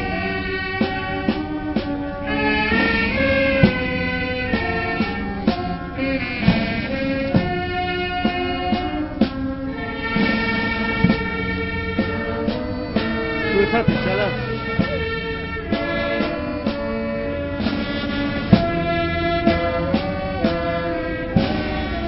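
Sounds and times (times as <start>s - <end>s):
brass band playing: 0.0s - 22.0s
drum beats: 0.0s - 22.0s.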